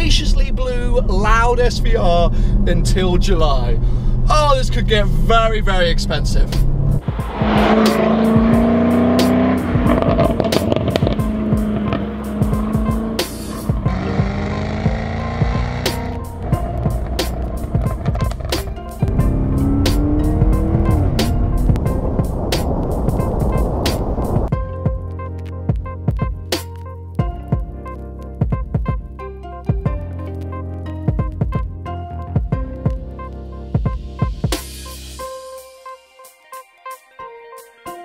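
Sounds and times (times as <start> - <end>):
car engine and exhaust revving: 2.5 - 24.5
background music with beat: 6.4 - 38.0.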